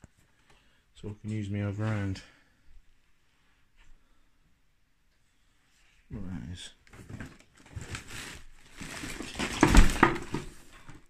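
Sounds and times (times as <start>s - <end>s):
household clutter rustling and clattering: 6.9s - 11.0s.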